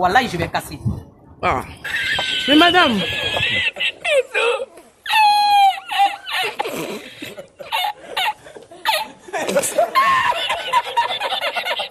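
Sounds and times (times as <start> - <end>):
people speaking: 0.0 - 1.8, 2.4 - 4.8
people laughing: 1.9 - 11.9.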